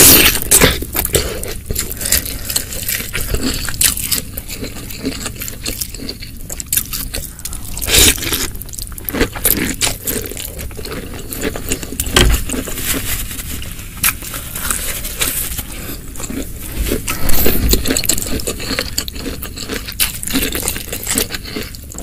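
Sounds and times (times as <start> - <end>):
crunchy chewing: 0.0 - 22.0.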